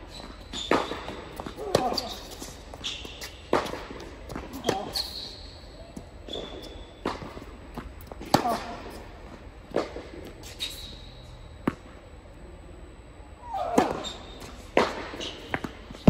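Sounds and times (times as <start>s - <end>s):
shoes squeaking on court: 0.1s - 3.4s, 4.5s - 6.9s.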